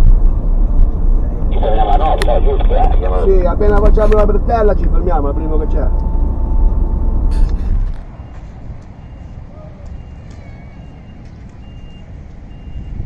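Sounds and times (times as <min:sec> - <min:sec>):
low traffic hum: 0:00.0 - 0:13.0
road and engine noise in van: 0:00.0 - 0:13.0
reversing alarm beeping: 0:05.3 - 0:07.5, 0:08.1 - 0:13.0.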